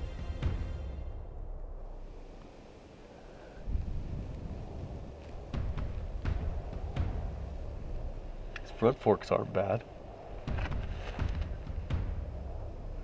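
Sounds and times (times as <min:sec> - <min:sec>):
wind rumbling on microphone: 0:01.0 - 0:13.0.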